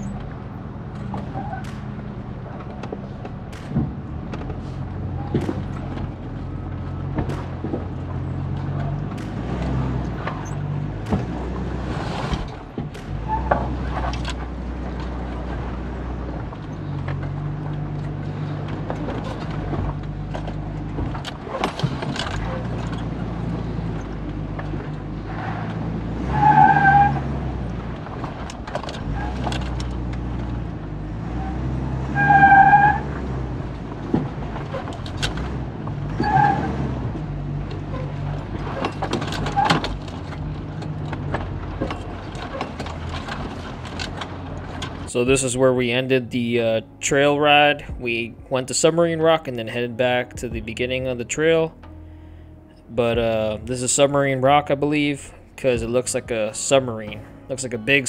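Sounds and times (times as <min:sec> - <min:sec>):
truck body knocks and rattles: 0:00.0 - 0:25.9, 0:26.8 - 0:31.7, 0:32.3 - 0:45.1
truck engine at crawling speed: 0:00.0 - 0:58.0.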